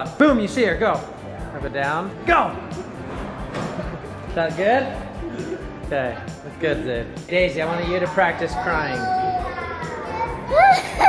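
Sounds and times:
girl wailing fake crying: 10.4 - 11.0.

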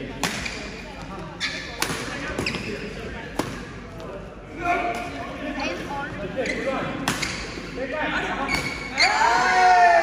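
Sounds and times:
rackets hitting shuttlecock: 0.2 - 0.7, 1.8 - 2.6.

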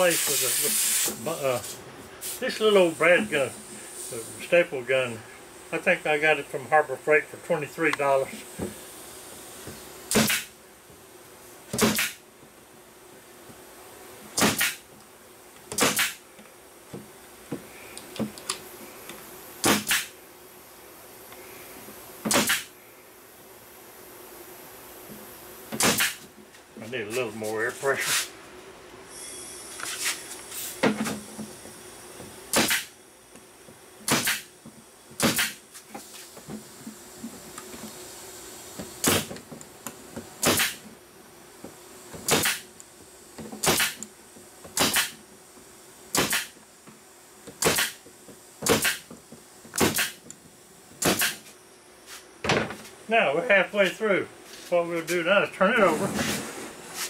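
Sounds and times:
air nailer firing: 0.0 - 4.3, 10.1 - 10.6, 11.7 - 12.2, 14.3 - 14.9, 15.7 - 16.2, 19.6 - 20.2, 22.2 - 22.8, 25.7 - 26.3, 32.5 - 33.0, 34.0 - 34.6, 35.2 - 36.4, 38.8 - 39.4, 40.4 - 40.9, 42.2 - 42.7, 43.6 - 44.0, 44.7 - 45.2, 46.1 - 46.6, 47.5 - 49.1, 49.7 - 50.3, 51.0 - 51.6.

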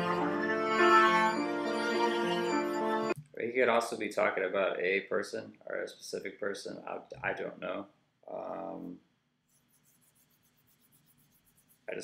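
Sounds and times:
light rapid rubbing: 9.5 - 12.0.

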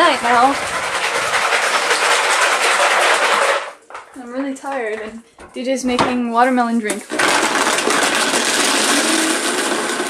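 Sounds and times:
blender whirring: 0.0 - 3.8, 7.1 - 10.0.

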